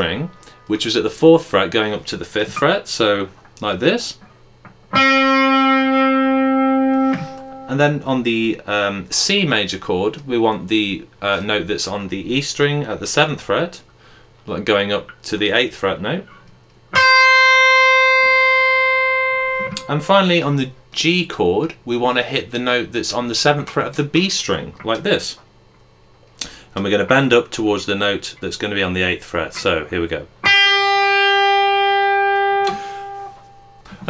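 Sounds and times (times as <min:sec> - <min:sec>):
electric guitar note ringing: 0:04.9 - 0:08.0, 0:16.3 - 0:20.4, 0:30.4 - 0:34.0.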